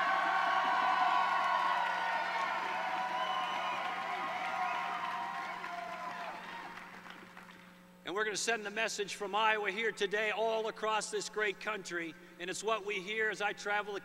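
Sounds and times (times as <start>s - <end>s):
people shouting and whooping: 0.0s - 6.9s
crowd cheering and applauding: 0.0s - 7.6s.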